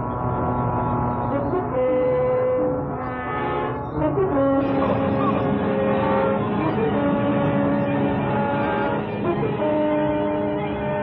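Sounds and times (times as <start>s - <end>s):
orchestral sustained chords: 0.0s - 11.0s.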